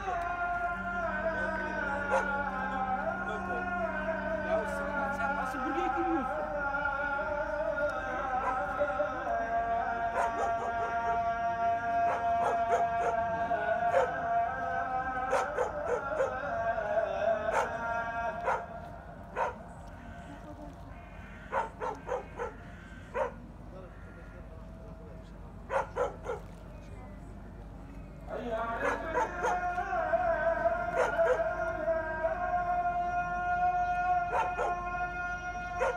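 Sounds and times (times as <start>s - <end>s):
sustained musical tone: 0.0s - 20.8s
dog barking and yipping: 10.2s - 10.9s, 15.3s - 16.3s, 18.4s - 18.6s, 19.4s - 19.6s, 21.5s - 23.4s, 25.7s - 26.5s, 28.8s - 29.6s, 31.0s - 31.4s, 34.3s - 34.8s.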